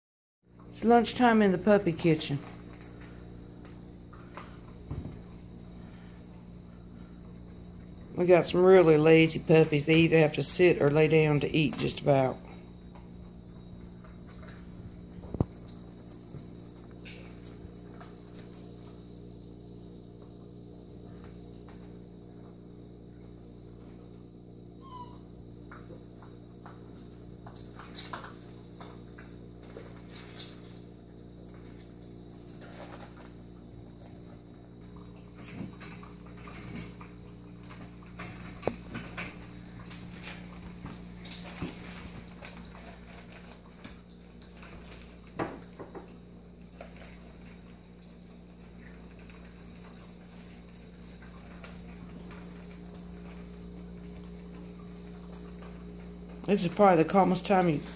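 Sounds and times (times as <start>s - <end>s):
steady low hum: 0.5s - 57.9s
kibble crunching: 35.8s - 45.4s.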